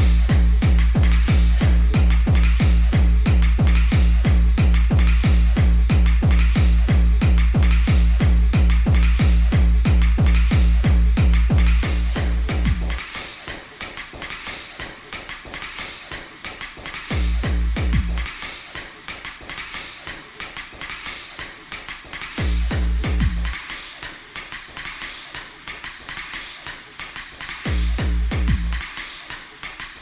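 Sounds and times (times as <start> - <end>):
heavy kick drum: 0.0 - 13.0, 17.1 - 18.3, 22.4 - 23.6, 27.6 - 28.9
fast clicking percussion: 0.0 - 30.0.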